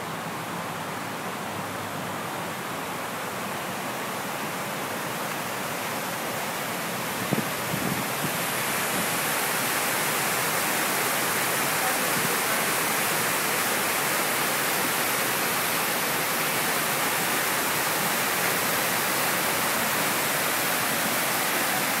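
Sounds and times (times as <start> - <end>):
water cascading down waterfall: 0.0 - 22.0.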